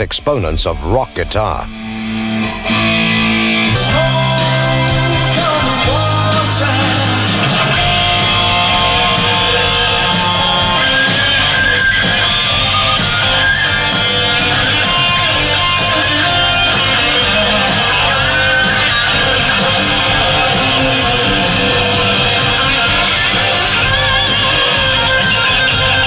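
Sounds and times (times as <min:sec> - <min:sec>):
distorted electric guitar: 0:00.0 - 0:26.0
rock backing track with drums: 0:01.7 - 0:26.0.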